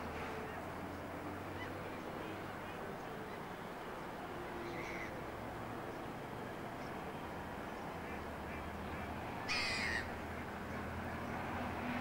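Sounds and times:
harsh rasping bird call: 0:09.4 - 0:10.2.

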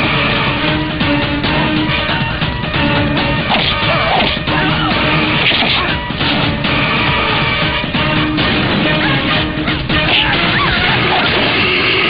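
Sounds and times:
loud film music: 0:00.0 - 0:12.0.

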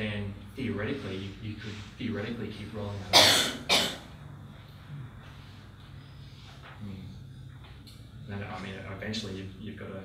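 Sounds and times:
person coughing: 0:03.1 - 0:04.1.

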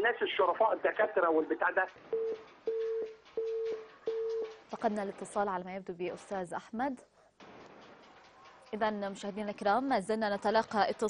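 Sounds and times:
telephone busy tone beeps: 0:02.1 - 0:04.5.

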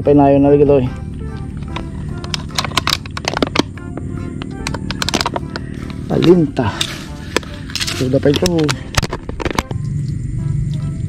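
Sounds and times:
background music: 0:00.0 - 0:11.0
sharp clicks and crackles: 0:01.3 - 0:10.2.

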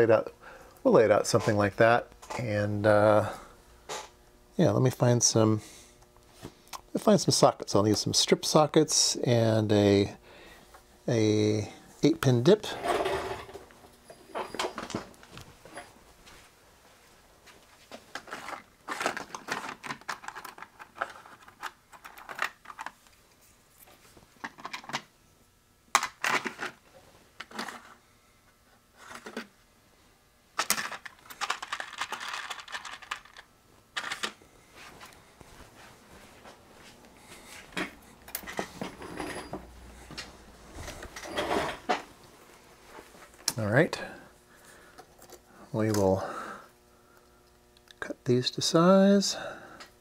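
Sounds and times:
rummaging through electronic parts: 0:12.6 - 0:13.7, 0:17.9 - 0:23.2, 0:23.8 - 0:25.1, 0:26.0 - 0:28.0, 0:29.0 - 0:29.6, 0:30.6 - 0:35.0, 0:37.5 - 0:42.1.

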